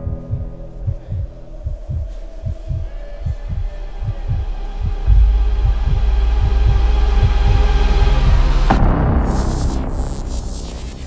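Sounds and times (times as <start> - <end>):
soft low thumps: 0.0 - 9.3
droning hum: 0.0 - 10.7.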